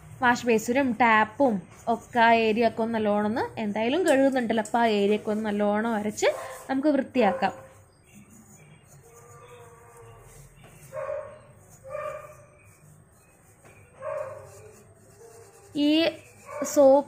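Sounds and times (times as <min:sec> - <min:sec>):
faint rubbing: 0:04.9 - 0:17.0.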